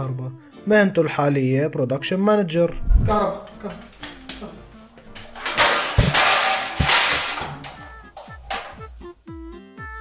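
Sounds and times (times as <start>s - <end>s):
faint background music: 0.0s - 10.0s
screwdriver clattering in metal cabinet: 5.1s - 8.8s.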